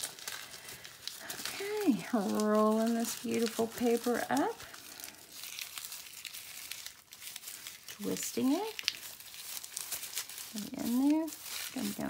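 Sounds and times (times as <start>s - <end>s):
tissue paper rustling and crinkling: 0.0s - 12.0s.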